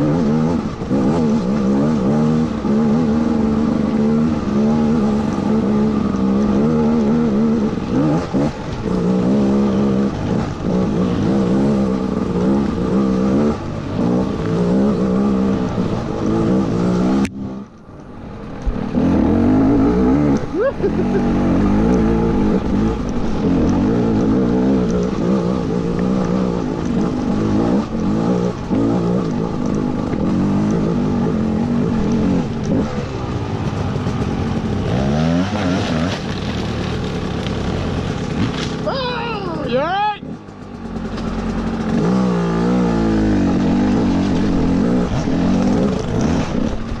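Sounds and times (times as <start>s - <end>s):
dirt bike engine revving: 0.0s - 17.6s, 18.8s - 47.0s.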